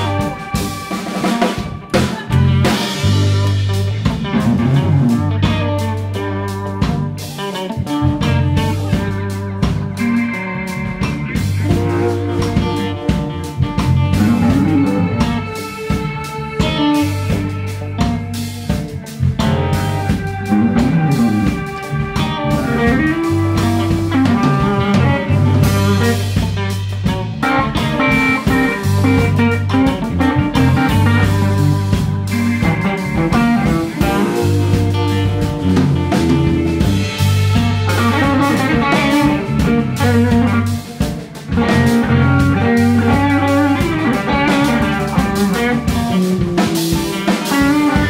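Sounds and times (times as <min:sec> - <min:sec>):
drum kit beat: 0:00.0 - 0:48.0
electric bass: 0:00.0 - 0:48.0
electric guitar lead line: 0:00.0 - 0:48.0.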